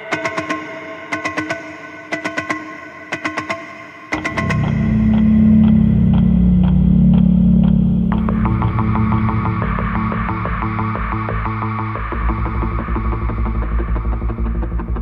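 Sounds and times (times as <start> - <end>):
rapid synthetic ticks: 4.1 - 11.2
faint sustained tones: 4.1 - 13.8
deep bass drone: 4.2 - 15.0.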